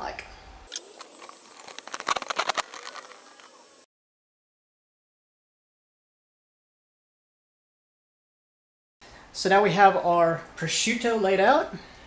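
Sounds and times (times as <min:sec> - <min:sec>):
camera clicks and rattles: 0:00.7 - 0:03.6
handling rustling: 0:00.8 - 0:03.8.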